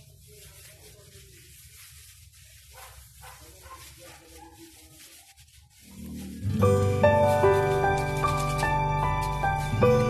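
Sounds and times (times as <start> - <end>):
rustling of grass bedding: 0.0 - 10.0.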